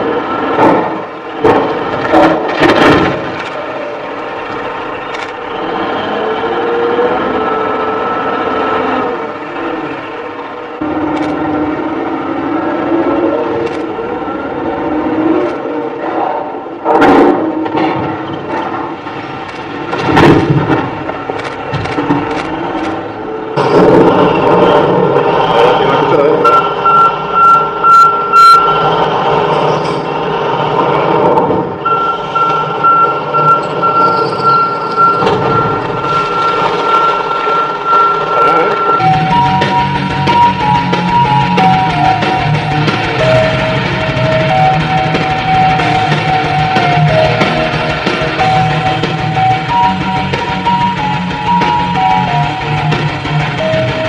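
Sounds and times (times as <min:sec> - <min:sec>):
diesel engine working hard: 0:00.0 - 0:54.0.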